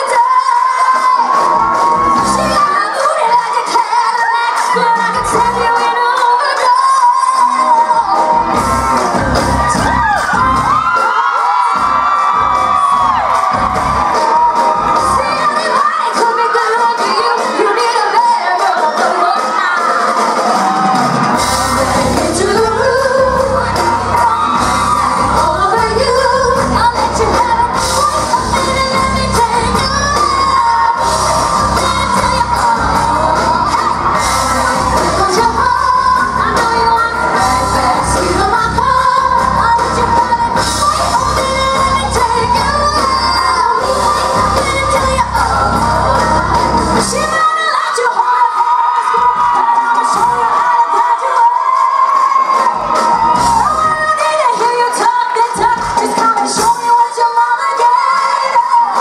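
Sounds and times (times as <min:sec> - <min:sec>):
bass and drums beat: 0:00.0 - 0:02.8, 0:04.6 - 0:07.2, 0:07.8 - 0:47.5, 0:52.1 - 0:57.2
women singing: 0:00.0 - 0:08.6, 0:14.0 - 0:20.0, 0:21.4 - 0:59.0
live pop band: 0:00.0 - 0:59.0.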